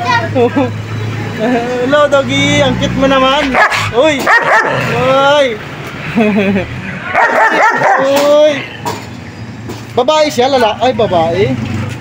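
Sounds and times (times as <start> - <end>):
dog barking and yipping: 3.5 - 4.9, 7.1 - 8.3.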